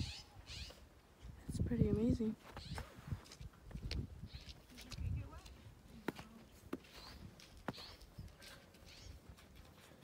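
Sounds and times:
footsteps on snow: 2.4s - 9.0s.

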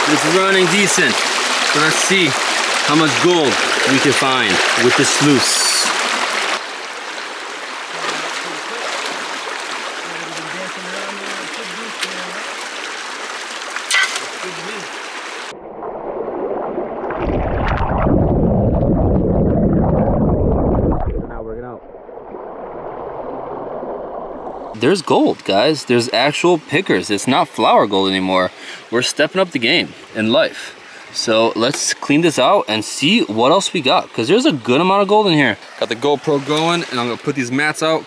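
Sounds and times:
water rushing through sluice box: 0.0s - 15.5s, 24.7s - 38.0s
creek water rushing and splashing: 0.0s - 18.3s, 22.1s - 38.0s.

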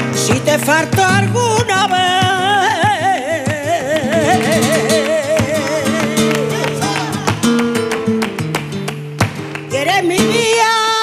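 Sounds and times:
woman singing with vibrato: 0.1s - 7.6s, 9.7s - 11.0s.

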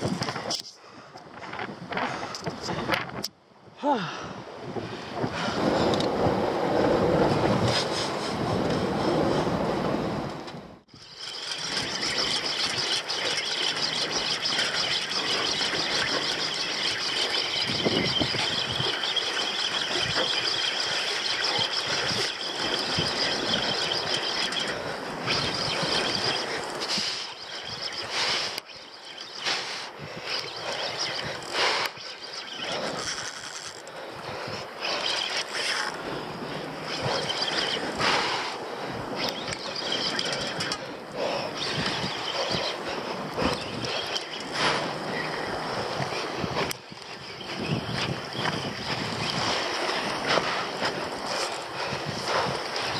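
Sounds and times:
wind noise on microphone: 0.0s - 28.6s, 29.4s - 52.9s.

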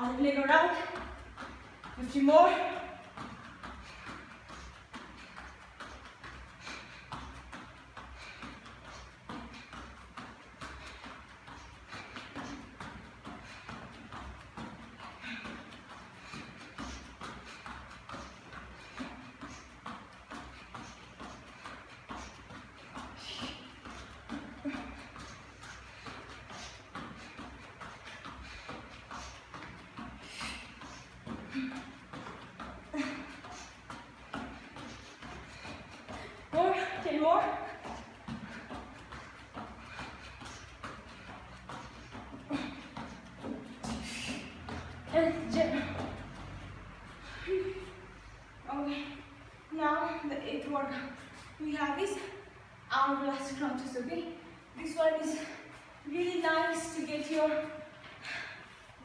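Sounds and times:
bare feet thudding on rubber floor: 0.0s - 48.2s.

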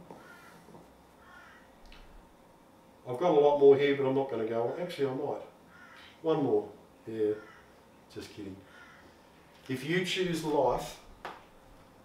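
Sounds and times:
caw-like bird calls: 0.1s - 1.8s, 5.6s - 6.3s, 7.3s - 7.9s, 8.6s - 9.4s.

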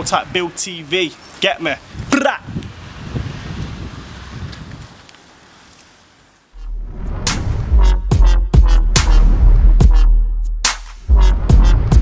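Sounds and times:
wind buffeting microphone: 1.8s - 5.2s
deep electronic bass note: 6.6s - 12.0s.

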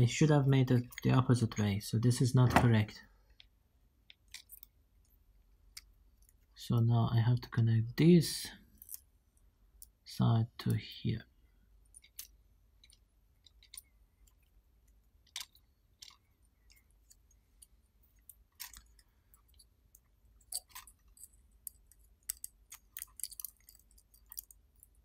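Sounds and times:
fingers handling wire clicks: 11.9s - 25.0s.

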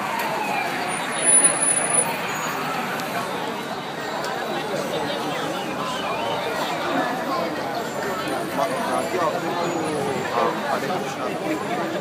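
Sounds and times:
crowd talking: 0.0s - 12.0s
traffic noise: 0.0s - 12.0s.

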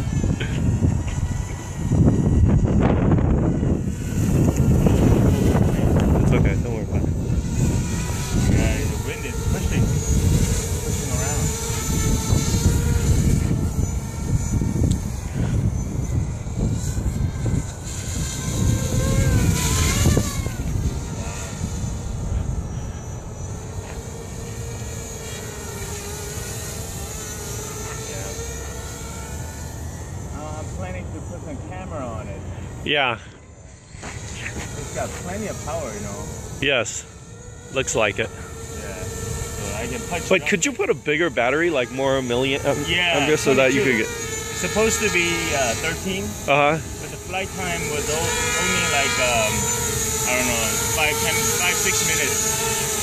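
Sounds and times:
wind rumbling on microphone: 0.0s - 27.4s
quadcopter propellers whining: 0.0s - 53.0s.

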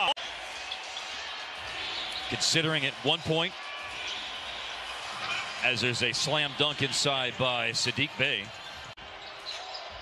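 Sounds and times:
commentator's voice: 2.3s - 3.6s, 5.6s - 8.5s.

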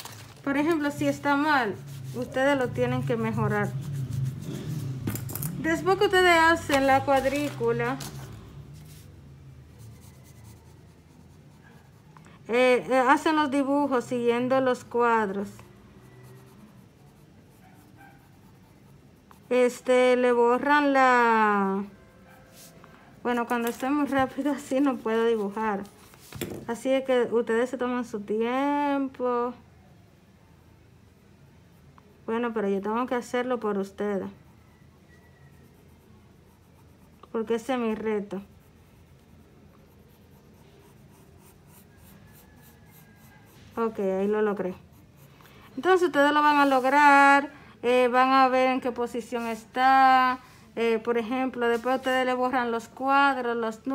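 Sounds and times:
pencil scratching on paper: 0.5s - 26.4s, 32.3s - 47.2s.

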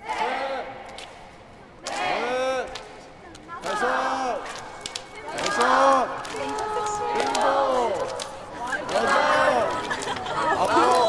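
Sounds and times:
girls shouting a count in unison: 5.1s - 9.5s.

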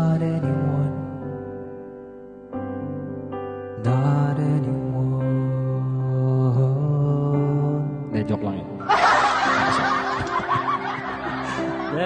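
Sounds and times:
piano backing track: 0.0s - 12.0s
man laughing: 8.8s - 12.0s.

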